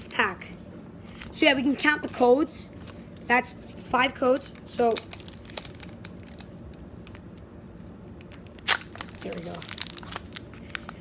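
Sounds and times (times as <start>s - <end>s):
foil wrapper tearing: 4.4s - 7.2s, 8.2s - 11.0s
foil wrapper crinkling: 4.4s - 11.0s.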